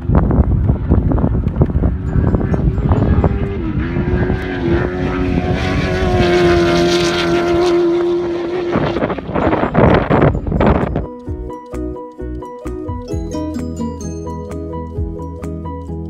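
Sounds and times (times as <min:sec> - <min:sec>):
truck engine at high revs: 0:00.0 - 0:10.9.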